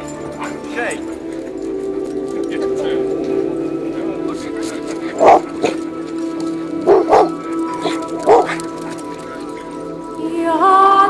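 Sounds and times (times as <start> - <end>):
background music: 0.0 - 11.0
dogs barking: 4.3 - 10.0.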